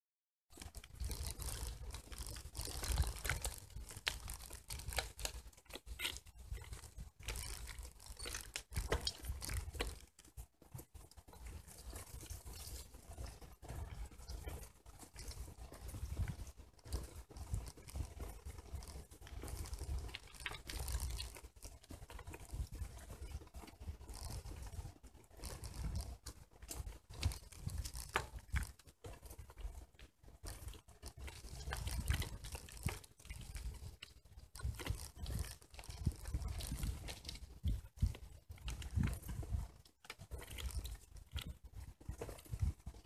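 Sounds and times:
bicycle tyres crunching on gravel: 0:00.5 - 0:43.0.

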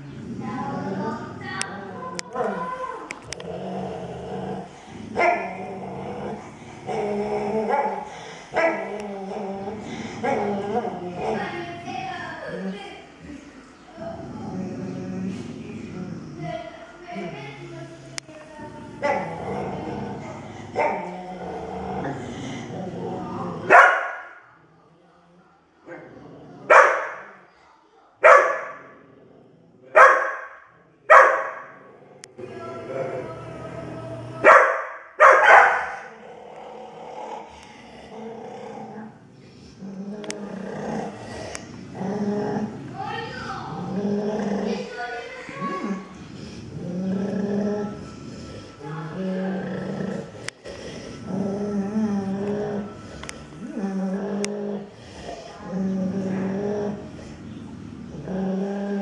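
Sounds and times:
dogs growling and snarling: 0:00.0 - 0:23.9, 0:25.8 - 0:27.6, 0:28.2 - 0:34.7, 0:35.4 - 0:59.0
dog barking: 0:23.7 - 0:24.4, 0:26.7 - 0:27.4, 0:28.2 - 0:28.8, 0:30.0 - 0:31.7, 0:34.4 - 0:36.1.

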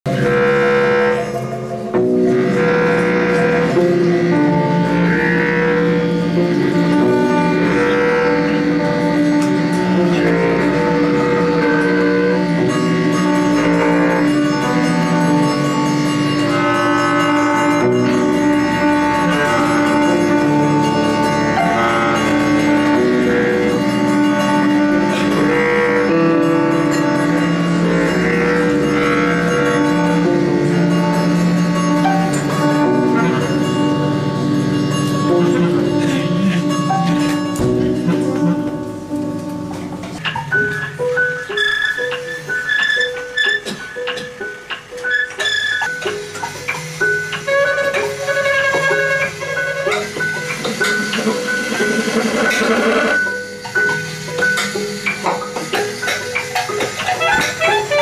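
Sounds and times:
acoustic ensemble long held notes: 0:00.1 - 0:58.0
overlapping droning tones: 0:00.1 - 0:58.0.

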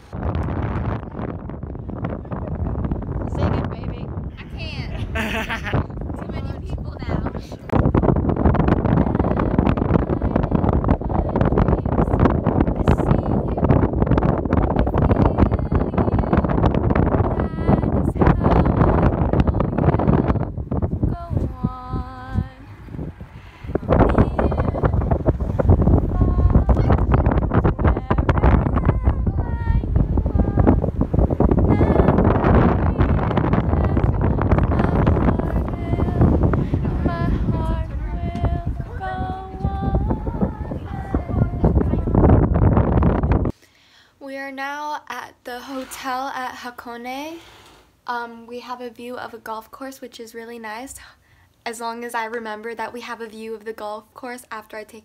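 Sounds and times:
wind buffeting microphone: 0:00.0 - 0:43.6
woman singing: 0:08.4 - 0:13.9, 0:14.6 - 0:42.6.

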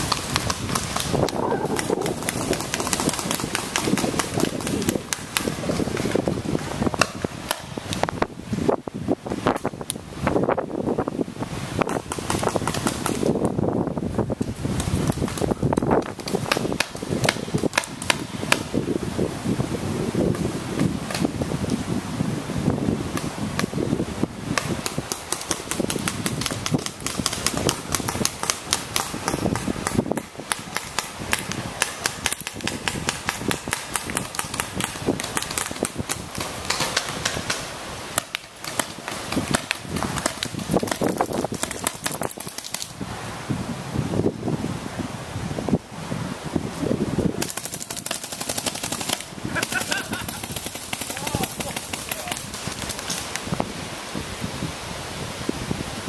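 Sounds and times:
paintball markers popping: 0:00.0 - 0:06.2, 0:11.8 - 0:13.3, 0:24.6 - 0:37.6, 0:38.2 - 0:42.9, 0:47.4 - 0:53.5.

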